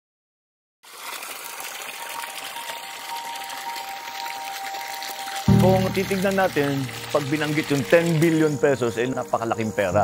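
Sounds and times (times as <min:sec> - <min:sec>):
water gushing from a pipe: 0:00.8 - 0:09.1.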